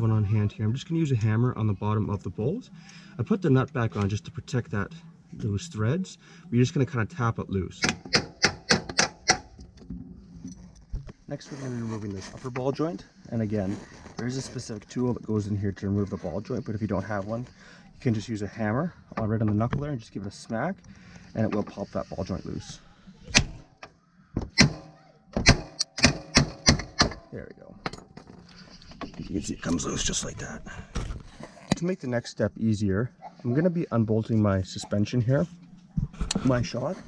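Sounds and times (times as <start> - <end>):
hammer tapping on metal nut: 7.8 - 9.5
hammer striking metal: 24.6 - 27.3.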